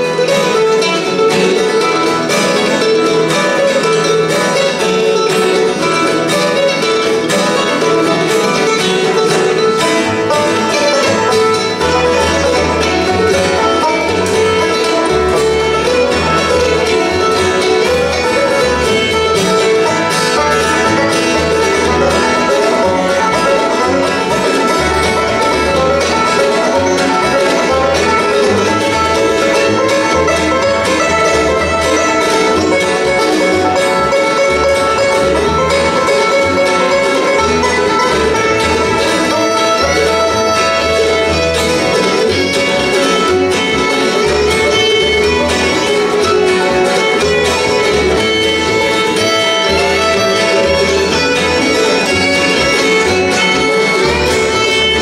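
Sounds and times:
acoustic guitar: 0:00.0 - 0:55.0
banjo: 0:00.0 - 0:55.0
fiddle: 0:00.0 - 0:55.0
mandolin: 0:00.0 - 0:55.0
upright bass: 0:00.0 - 0:55.0.

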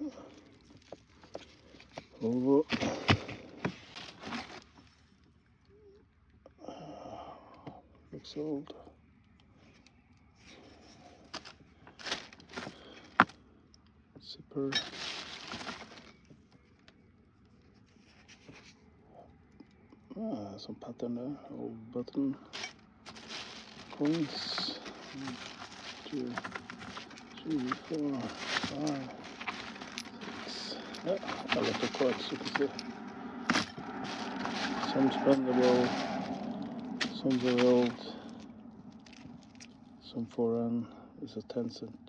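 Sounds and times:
plastic bag rustling: 0:00.0 - 0:05.2, 0:11.0 - 0:13.3, 0:14.8 - 0:16.3, 0:22.5 - 0:39.8.

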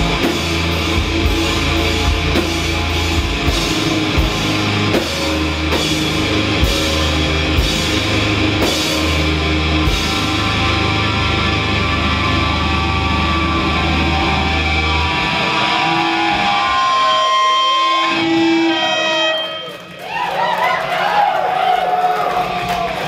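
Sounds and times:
distorted guitars and bass chord: 0:00.0 - 0:19.6
high guitar feedback: 0:00.0 - 0:20.0.

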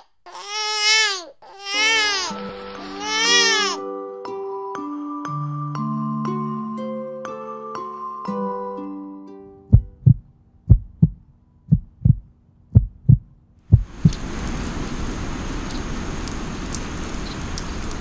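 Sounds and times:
low double heartbeat thump: 0:09.7 - 0:14.2
steady rain sound: 0:13.7 - 0:18.0
drip ticks: 0:14.0 - 0:14.2.

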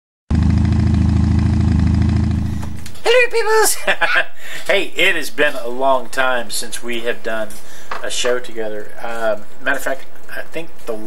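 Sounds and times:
motorcycle engine running: 0:00.3 - 0:03.0.

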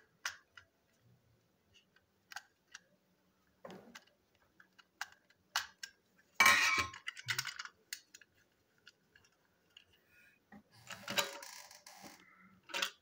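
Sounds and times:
small hard plastic clicks: 0:03.8 - 0:06.0.

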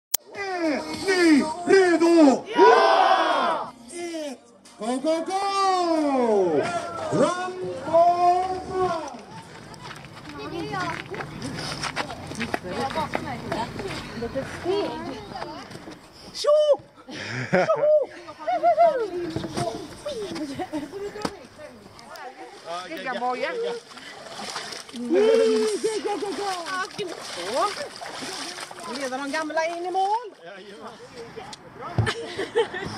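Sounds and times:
people calling out: 0:00.2 - 0:04.4, 0:05.2 - 0:09.8, 0:24.9 - 0:28.4
crowd shouting a battle cry: 0:02.4 - 0:03.7
legs splashing in water: 0:22.0 - 0:30.3
person shouting: 0:25.0 - 0:25.8.

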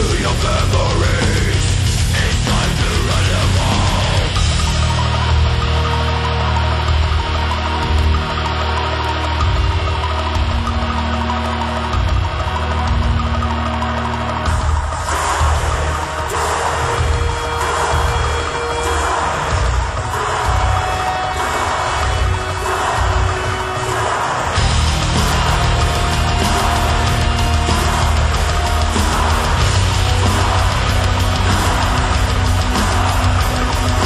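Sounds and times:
symphonic black metal instrumental: 0:00.0 - 0:34.0.

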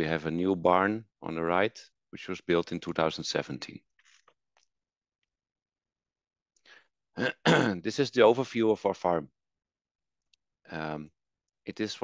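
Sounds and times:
man speaking: 0:00.0 - 0:03.8, 0:07.2 - 0:09.3, 0:10.7 - 0:11.1, 0:11.7 - 0:12.0
man clearing his throat: 0:07.2 - 0:07.8.

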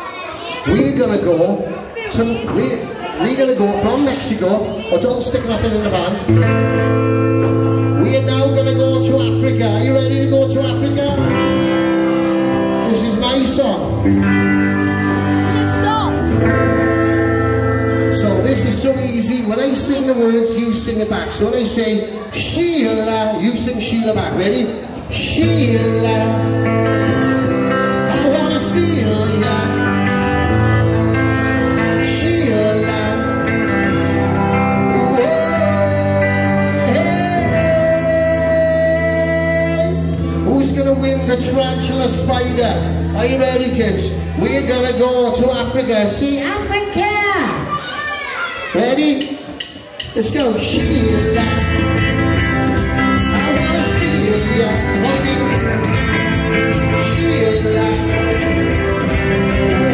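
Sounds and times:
electric guitar strumming chords: 0:03.2 - 0:21.4, 0:23.0 - 0:45.9, 0:49.7 - 0:59.9
steady bass: 0:05.4 - 0:20.3, 0:25.1 - 0:46.0, 0:50.4 - 0:59.9
person singing: 0:25.2 - 0:28.1, 0:34.0 - 0:40.2, 0:53.4 - 0:59.9.

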